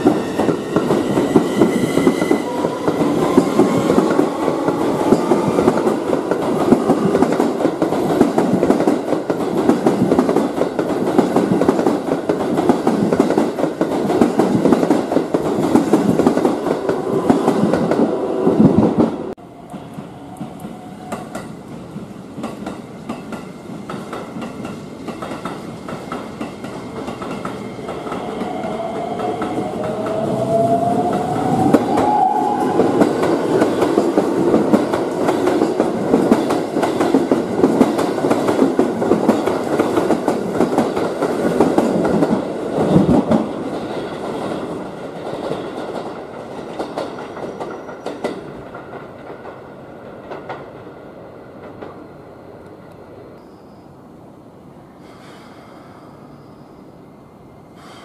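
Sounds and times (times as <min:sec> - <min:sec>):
electric trains running past: 0:00.0 - 0:58.0.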